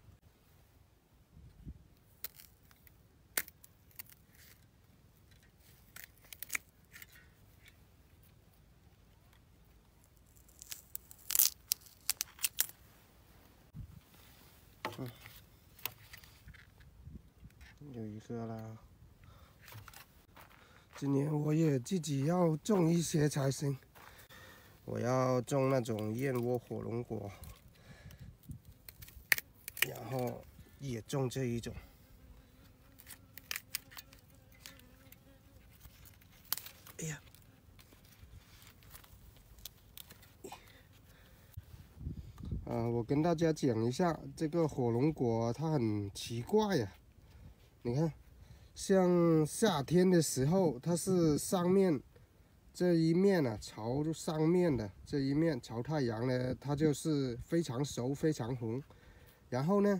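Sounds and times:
pruning shears snipping stalk: 5.4 - 7.8, 28.4 - 30.4, 32.9 - 40.8.

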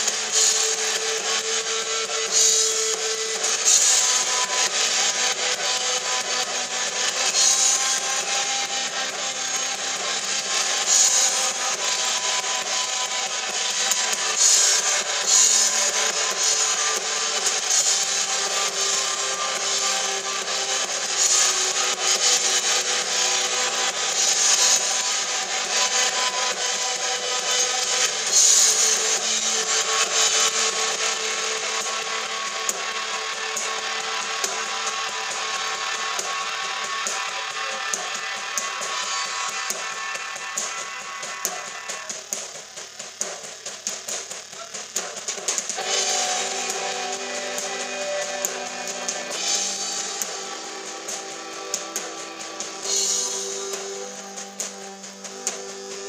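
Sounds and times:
electric guitar: 0.0 - 42.5, 45.6 - 56.0
cymbal crashes: 0.0 - 56.0
drum kit: 0.0 - 56.0.

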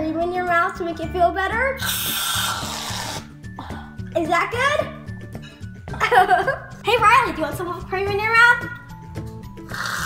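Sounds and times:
background music: 0.0 - 10.0
aerosol can spraying hiss: 1.8 - 3.2.

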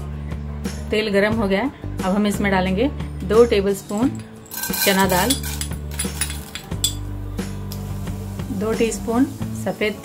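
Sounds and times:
background music: 0.0 - 10.0
spoon clinking on glass bowl: 3.9 - 7.1.

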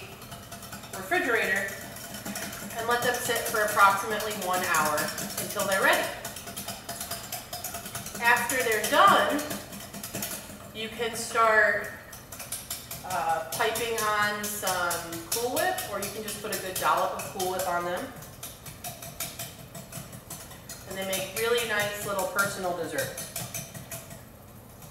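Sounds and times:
whisk beating in a bowl: 0.0 - 24.9.

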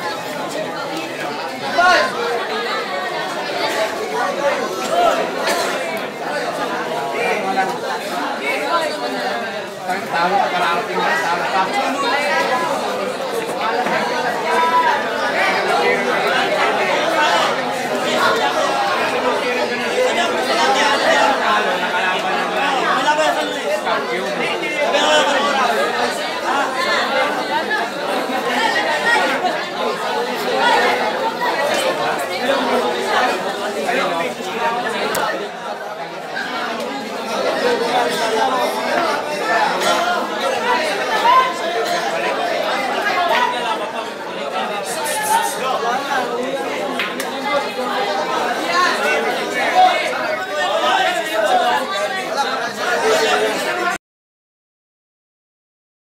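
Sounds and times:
crowd chattering: 0.0 - 54.0.

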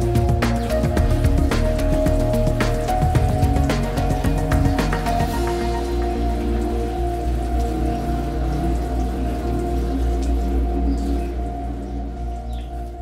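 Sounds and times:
soft background music: 0.0 - 13.0
water spray pattering on soil: 0.0 - 13.0.

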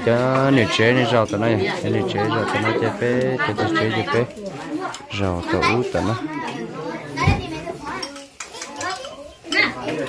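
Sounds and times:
children's voices: 0.0 - 10.0
people chattering: 0.0 - 10.0.

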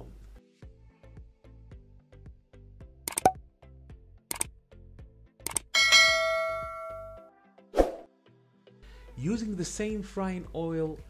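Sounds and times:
sharp clicks: 3.1 - 3.4, 4.3 - 4.5, 5.4 - 5.7
bright metallic ding: 5.8 - 7.3.

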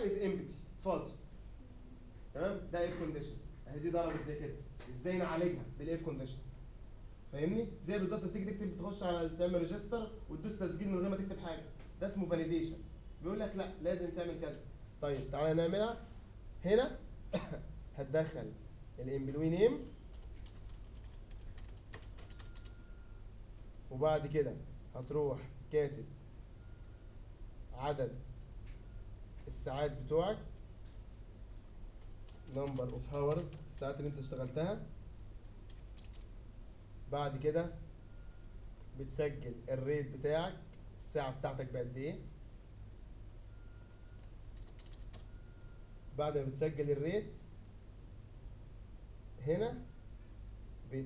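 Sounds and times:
computer keyboard clicks: 20.1 - 22.8, 31.4 - 33.7, 35.7 - 36.3, 38.4 - 38.9, 43.8 - 45.3.

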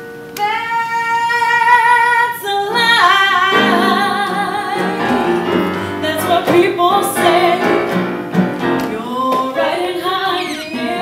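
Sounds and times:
keyboard accompaniment: 0.0 - 11.0
woman singing with vibrato: 0.4 - 8.0, 8.8 - 11.0.

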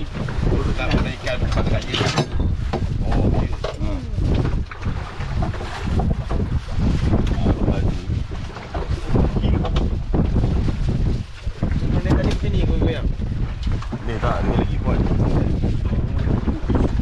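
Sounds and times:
strong wind buffeting microphone: 0.0 - 17.0.

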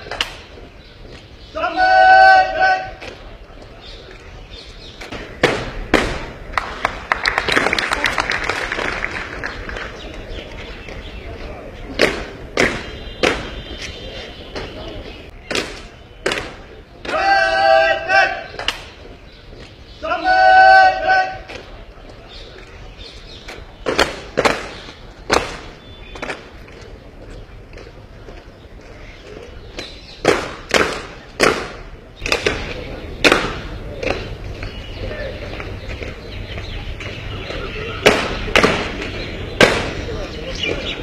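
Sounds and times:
boots stamping on pavement: 10.0 - 17.4, 21.4 - 41.0.

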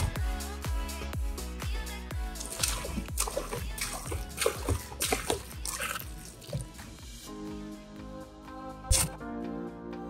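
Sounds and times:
background music with a beat: 0.0 - 10.0
soda pouring and splashing: 2.3 - 7.2.

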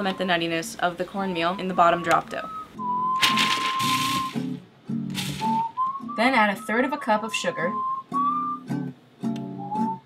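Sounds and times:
whistled music: 1.3 - 10.0
nuts rattling in bowl: 3.2 - 4.4, 5.2 - 5.5.

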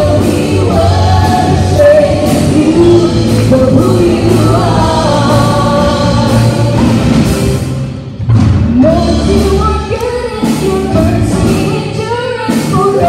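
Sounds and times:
women singing: 0.0 - 7.4, 8.8 - 13.0
keyboard: 0.0 - 13.0
steady beat: 0.0 - 13.0.

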